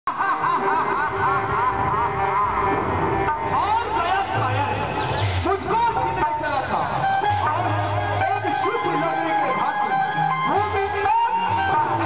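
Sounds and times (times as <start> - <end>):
man laughing loudly: 0.1 - 2.4.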